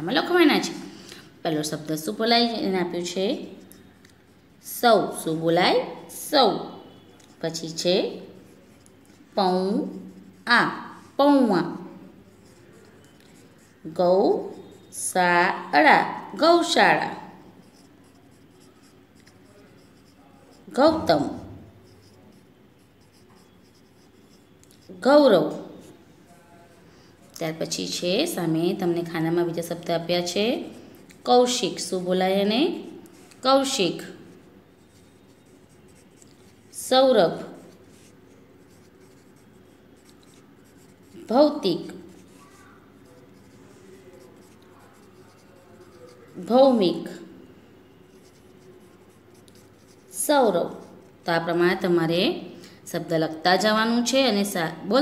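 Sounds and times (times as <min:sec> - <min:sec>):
pencil writing on paper: 0:06.6 - 0:14.9, 0:16.7 - 0:26.0, 0:29.5 - 0:36.7, 0:37.3 - 0:46.5, 0:48.1 - 0:51.0.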